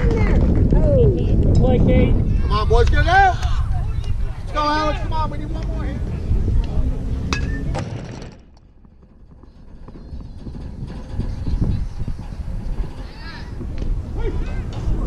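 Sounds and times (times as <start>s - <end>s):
low rumble: 3.4s - 15.0s
unclear voices: 10.9s - 15.0s.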